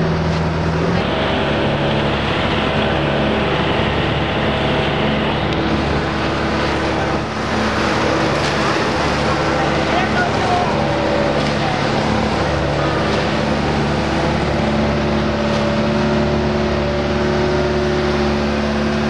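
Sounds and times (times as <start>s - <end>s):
motorboat engine running: 0.0s - 19.0s
rushing water: 0.0s - 19.0s.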